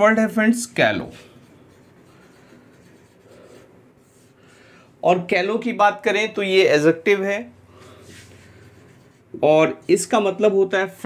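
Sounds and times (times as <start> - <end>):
marker pen writing on whiteboard: 1.0 - 4.5, 7.8 - 10.6.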